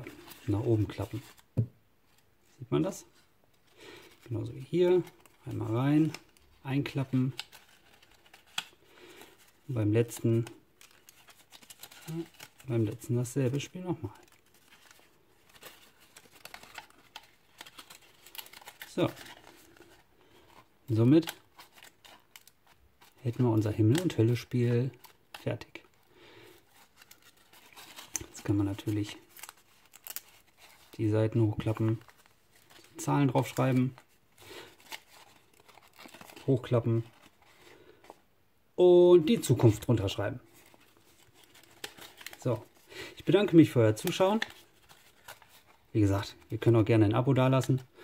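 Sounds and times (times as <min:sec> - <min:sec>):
folded paper crinkling: 0:00.0 - 0:01.5, 0:02.1 - 0:38.2, 0:39.2 - 0:48.0.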